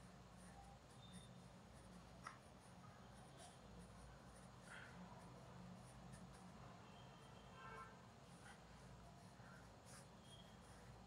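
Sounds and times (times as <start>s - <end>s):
pencil scratching on paper: 0.0s - 6.8s, 8.1s - 11.0s.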